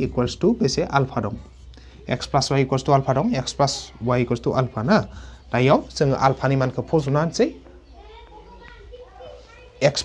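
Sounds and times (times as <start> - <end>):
man speaking: 0.0 - 7.6, 9.8 - 10.0
distant children's voices: 0.0 - 10.0.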